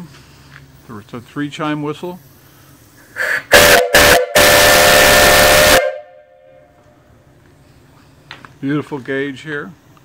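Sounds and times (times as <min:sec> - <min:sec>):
rush of steam: 0:00.0 - 0:06.2
steam whistle blasts: 0:03.2 - 0:06.8.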